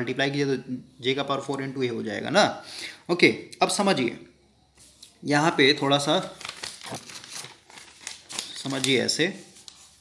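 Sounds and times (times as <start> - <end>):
paper rustling and crinkling: 6.0 - 10.0.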